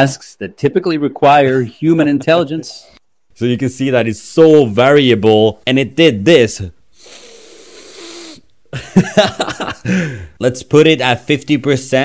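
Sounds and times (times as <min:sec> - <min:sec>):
man laughing breathily: 0:08.7 - 0:10.4.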